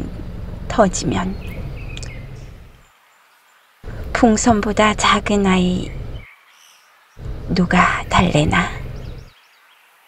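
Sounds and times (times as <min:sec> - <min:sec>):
low outdoor rumble with hiss: 0:00.0 - 0:10.0.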